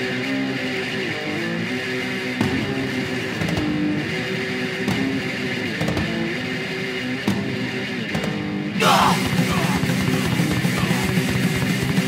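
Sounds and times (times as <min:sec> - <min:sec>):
bass guitar: 0:00.0 - 0:12.0
heavy metal guitar riff: 0:00.0 - 0:12.0.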